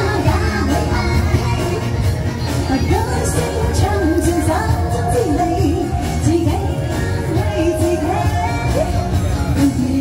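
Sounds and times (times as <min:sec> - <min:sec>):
pop backing track: 0:00.0 - 0:10.0
woman singing karaoke: 0:00.0 - 0:10.0.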